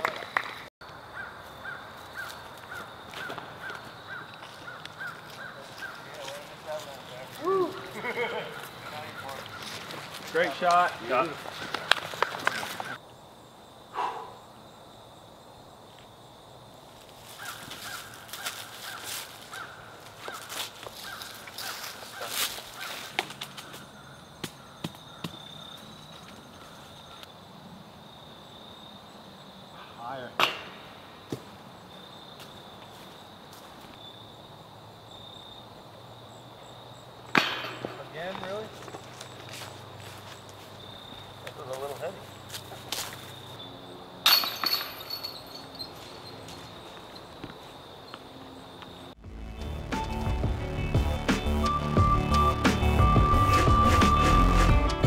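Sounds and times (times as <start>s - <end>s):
high insect trill: 0.2s - 50.1s.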